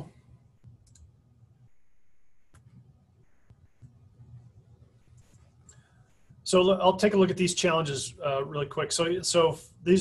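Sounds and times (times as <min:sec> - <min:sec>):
computer mouse clicks: 0:00.6 - 0:01.1
faint high whine: 0:01.6 - 0:10.0.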